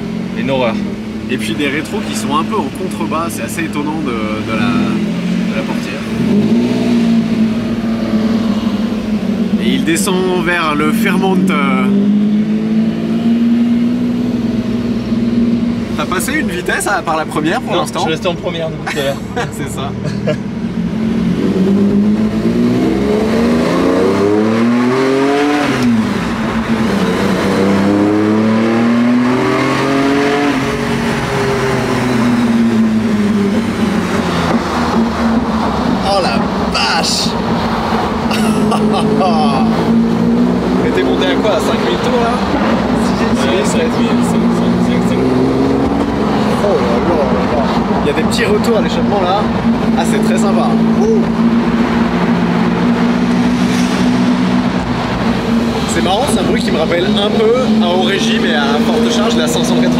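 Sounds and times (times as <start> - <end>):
car engine revving: 0.0 - 59.9.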